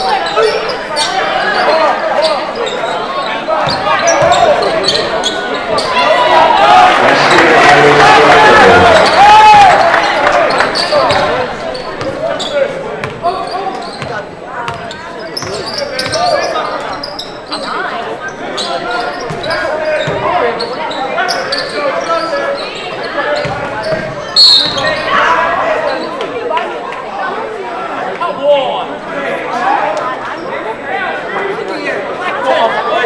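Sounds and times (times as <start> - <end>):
crowd voices and shouts: 0.0 - 33.0.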